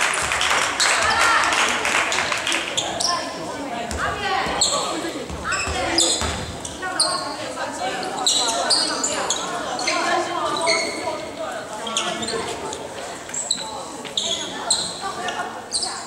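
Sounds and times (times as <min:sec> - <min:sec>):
voices echoing in hall: 0:00.0 - 0:16.0
basketball bouncing on hardwood: 0:05.3 - 0:06.5.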